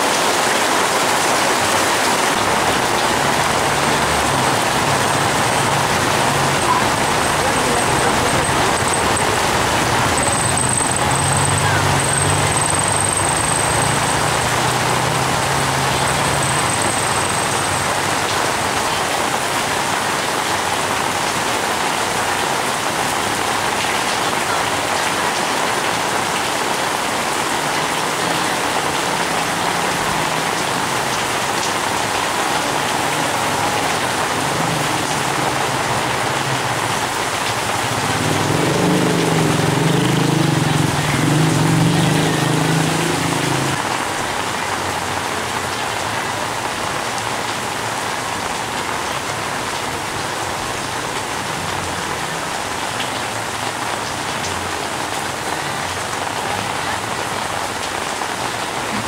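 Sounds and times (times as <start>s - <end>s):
heavy rain on flooded street: 0.0s - 59.0s
motorcycle engine: 2.3s - 18.8s, 27.7s - 45.2s
motor tricycle engine passing: 2.4s - 18.8s, 27.3s - 45.2s.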